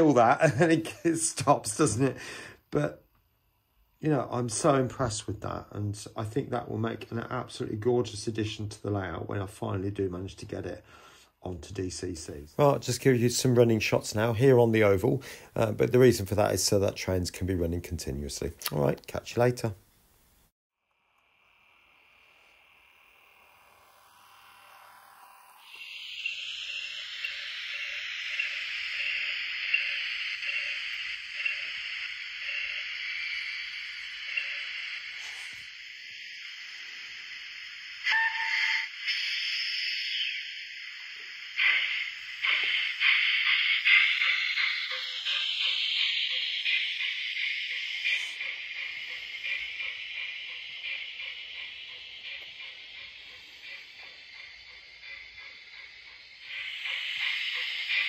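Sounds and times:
model train motor whine: 0:20.9 - 0:58.0.

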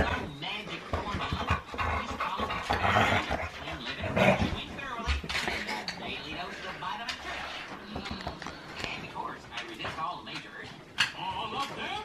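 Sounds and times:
dogs making play noises: 0:00.0 - 0:08.1
dogs panting: 0:00.0 - 0:09.0.

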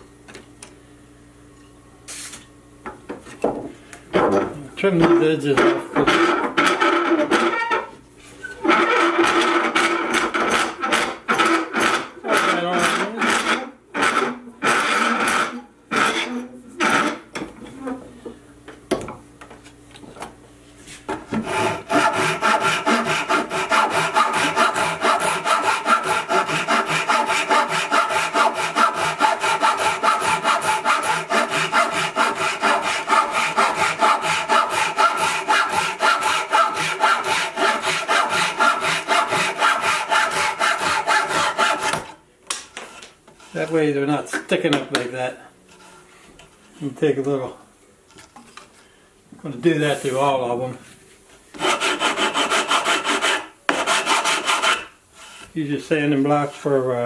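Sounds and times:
hand saw cutting wood: 0:08.6 - 0:17.2, 0:21.3 - 0:42.2, 0:51.6 - 0:55.4.

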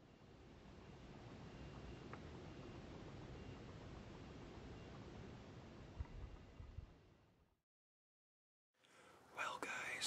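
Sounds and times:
faint background hiss: 0:08.8 - 0:10.0.

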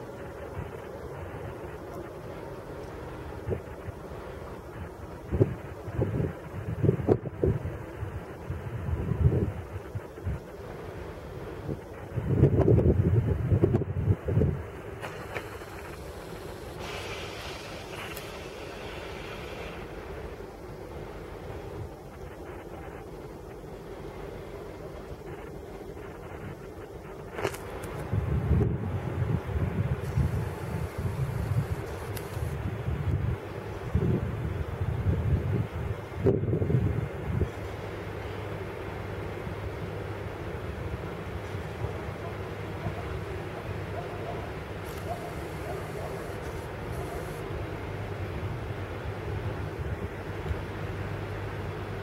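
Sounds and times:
wind buffeting microphone: 0:00.0 - 0:37.8
low hum of distant rail vehicle: 0:00.0 - 0:52.0.

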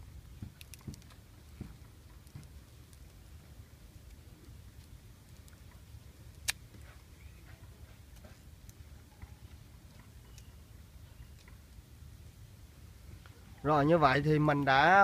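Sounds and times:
faint clicks and crunches: 0:00.4 - 0:03.2, 0:04.0 - 0:10.5.

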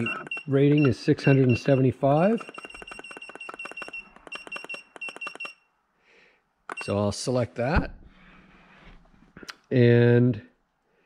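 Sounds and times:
battery tester beeping: 0:00.0 - 0:05.7, 0:06.7 - 0:07.0.

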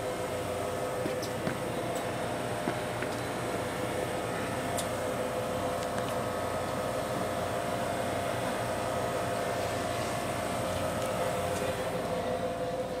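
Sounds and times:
faint whining tones: 0:00.0 - 0:13.0
machinery hum: 0:00.0 - 0:13.0.

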